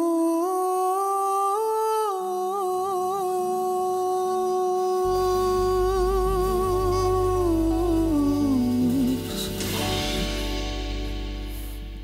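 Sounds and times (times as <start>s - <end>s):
mellow melody line: 2.2s - 12.0s
live band playing: 5.1s - 12.0s
low bass note: 5.1s - 12.0s.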